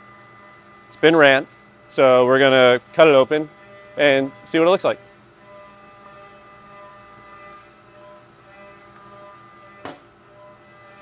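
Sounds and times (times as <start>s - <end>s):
hum of held tones: 0.0s - 11.0s
knock on workbench: 9.8s - 10.1s.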